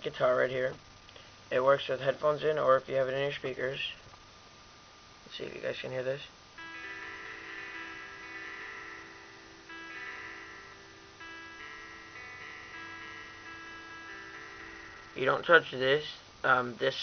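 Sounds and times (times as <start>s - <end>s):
simulated guitar notes and chords: 6.6s - 16.1s.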